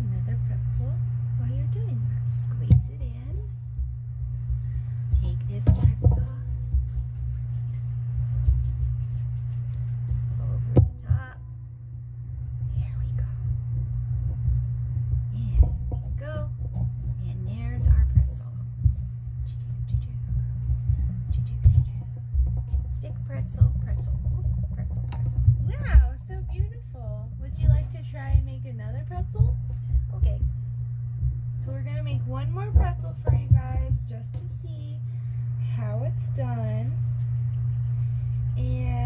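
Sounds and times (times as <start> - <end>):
steady low hum: 0.0 - 39.0
whispered voices: 19.4 - 22.2.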